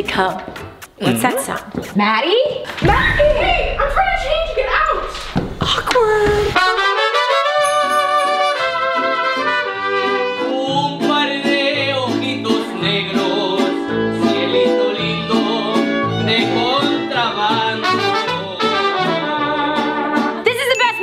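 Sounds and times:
mariachi band playing: 0:00.6 - 0:01.9, 0:06.6 - 0:20.7
trumpets: 0:06.4 - 0:10.6, 0:17.8 - 0:20.4.

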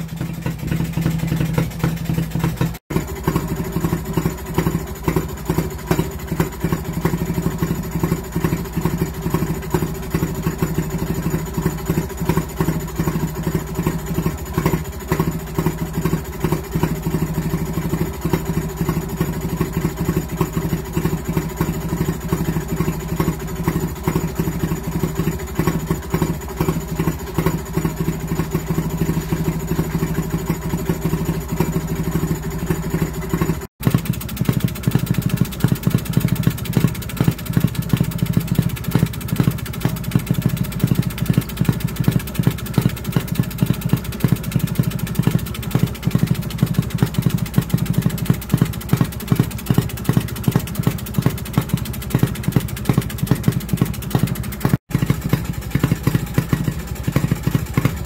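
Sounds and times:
stationary engine running: 0:00.0 - 0:58.0.

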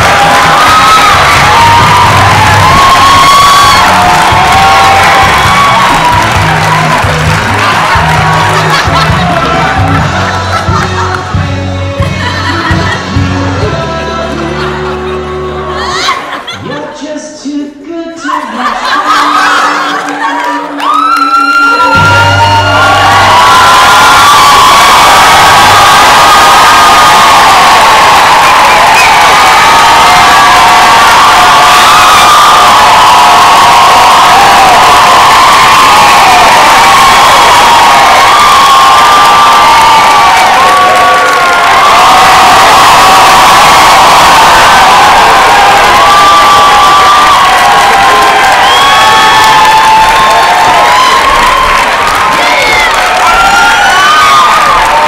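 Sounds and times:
audience cheering and screaming: 0:00.0 - 0:11.4, 0:18.3 - 0:55.0.

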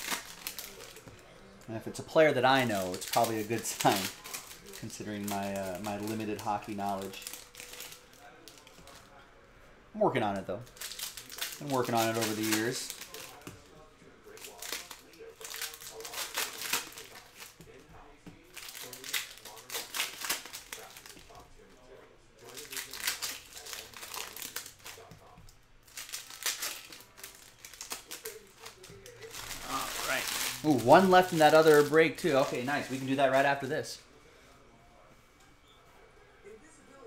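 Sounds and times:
foil wrappers crinkling and tearing: 0:00.0 - 0:09.2, 0:10.1 - 0:21.6, 0:22.4 - 0:33.9.

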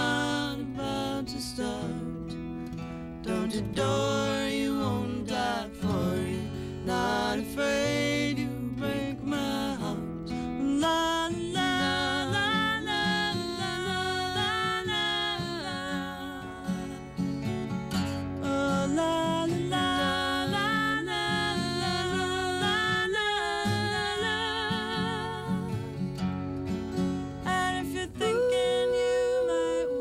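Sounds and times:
women singing together: 0:00.0 - 0:02.5, 0:03.2 - 0:17.0, 0:18.4 - 0:26.1, 0:27.4 - 0:30.0
strummed acoustic guitars: 0:00.0 - 0:30.0.

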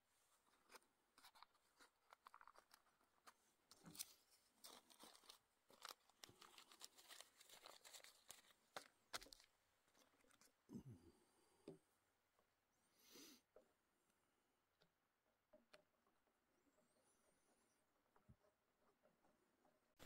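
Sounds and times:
packet crinkling and rustling: 0:00.4 - 0:10.6
small clicks and taps: 0:07.1 - 0:10.5, 0:14.8 - 0:17.0.

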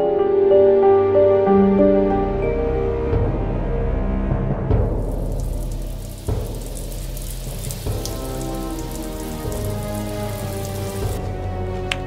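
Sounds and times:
film score of low notes: 0:00.0 - 0:12.0
rain falling: 0:04.8 - 0:12.0.

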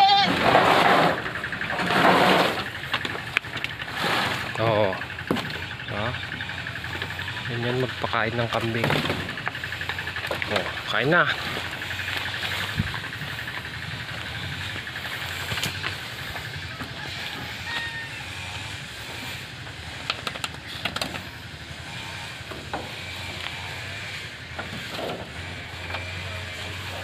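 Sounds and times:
goats chewing: 0:00.0 - 0:27.0
steady low hum: 0:00.1 - 0:27.0
leaves rustling: 0:11.2 - 0:16.6.

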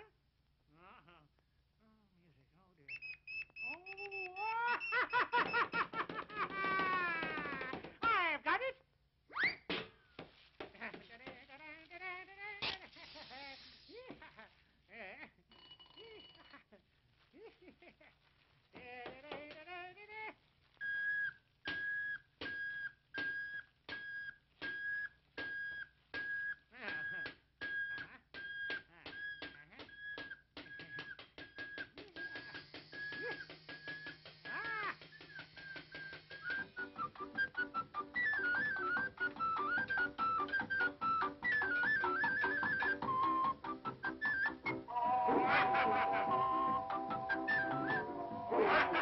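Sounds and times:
wavering sliding whistle tone: 0:30.0 - 0:49.0.

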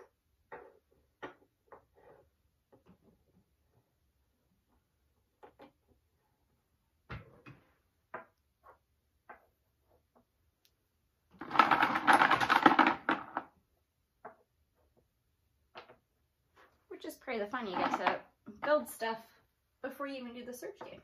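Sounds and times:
wooden blocks clicking and knocking: 0:08.0 - 0:16.2, 0:17.6 - 0:19.0
blocks rattling clatter: 0:11.3 - 0:13.6, 0:17.6 - 0:18.3.

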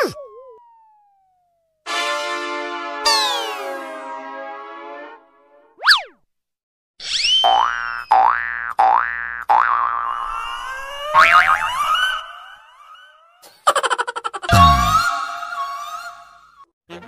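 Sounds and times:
springy rising boings: 0:00.0 - 0:01.5
whistle swoop: 0:05.8 - 0:06.2, 0:07.0 - 0:07.5.

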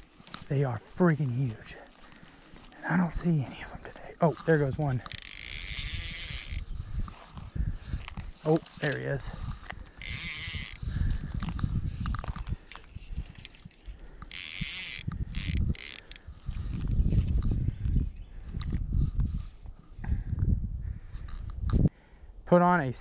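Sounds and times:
reel clicks: 0:04.4 - 0:06.6, 0:08.6 - 0:09.1, 0:09.9 - 0:11.6, 0:12.6 - 0:16.2
fishing reel drag buzzing: 0:05.0 - 0:06.6, 0:09.9 - 0:11.3, 0:12.7 - 0:16.2
wind rumble on microphone: 0:05.6 - 0:08.4, 0:09.0 - 0:22.0.

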